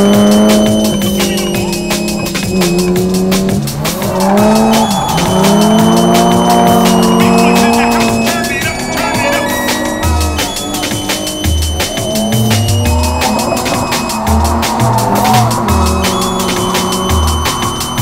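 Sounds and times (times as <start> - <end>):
car engine revving high: 0.0 - 18.0
fast-beat music: 0.0 - 18.0
tyres squealing: 0.0 - 18.0.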